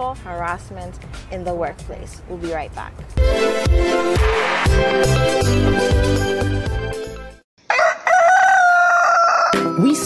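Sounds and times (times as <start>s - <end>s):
music: 0.0s - 7.4s, 9.6s - 10.0s
rooster crowing: 7.6s - 10.0s.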